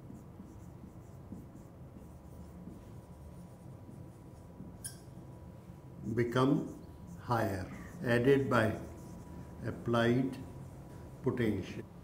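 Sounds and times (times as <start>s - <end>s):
marker pen writing on whiteboard: 0.0s - 5.5s, 6.4s - 11.8s.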